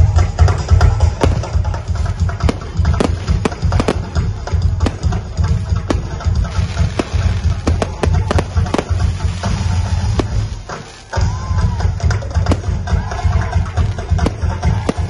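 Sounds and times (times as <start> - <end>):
fireworks bangs and crackles: 0.0 - 15.0
music with pulsing bass: 0.0 - 15.0.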